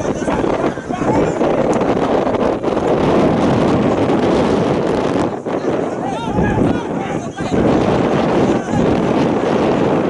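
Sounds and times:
wind blowing on microphone: 0.0s - 10.0s.

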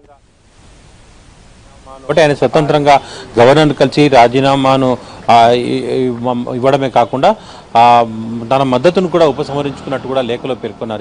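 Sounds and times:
audio line hiss: 0.0s - 11.0s
man speaking: 1.7s - 11.0s.

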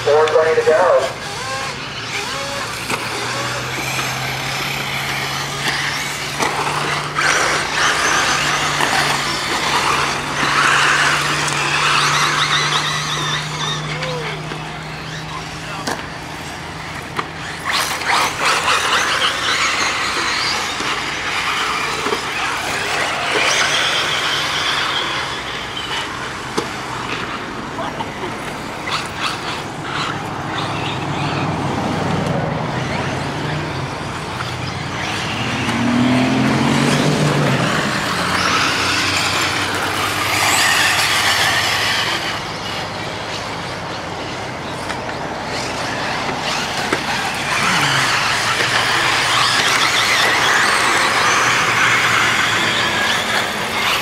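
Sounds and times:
electric motors whining: 0.0s - 54.0s
sharp clacks: 44.8s - 54.0s.

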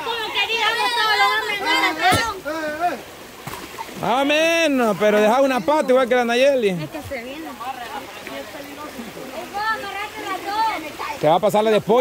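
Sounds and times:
fast-flowing stream rushing: 0.0s - 12.0s.

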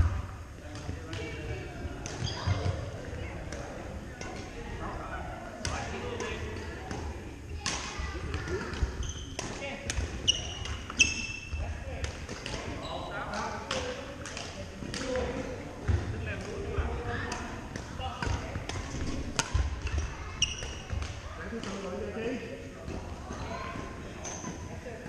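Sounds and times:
players talking: 0.0s - 25.0s
sneaker squeaks: 2.1s - 2.9s, 8.7s - 11.7s, 12.7s - 13.2s, 19.5s - 21.2s, 23.3s - 24.7s.

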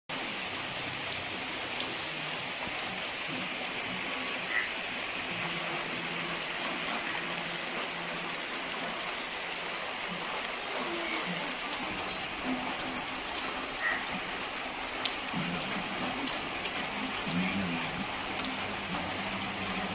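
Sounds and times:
heavy rain on foliage and roofs: 0.1s - 19.9s.

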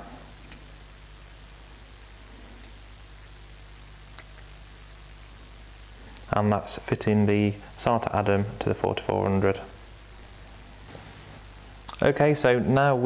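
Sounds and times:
low hum of room tone: 0.0s - 13.0s.

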